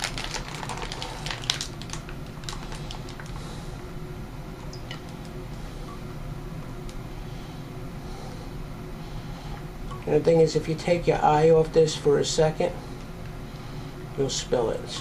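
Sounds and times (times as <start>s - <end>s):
plastic pouch crackling: 0.0s - 3.4s.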